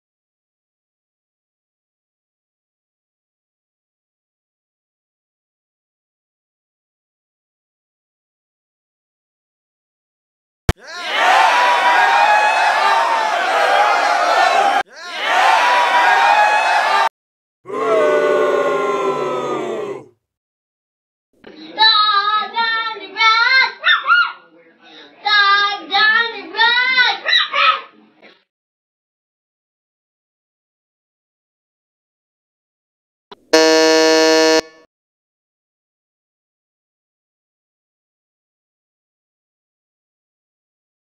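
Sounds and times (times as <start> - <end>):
crowd noise: 10.8 - 17.1
buzzy electronic tone: 33.6 - 34.8
held chord: 33.6 - 34.8.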